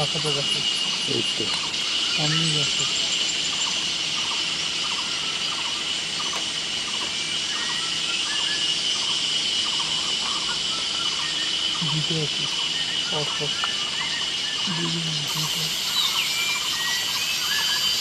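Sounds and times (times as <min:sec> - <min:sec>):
insect chirps: 0:00.0 - 0:18.0
insect drone: 0:00.0 - 0:18.0.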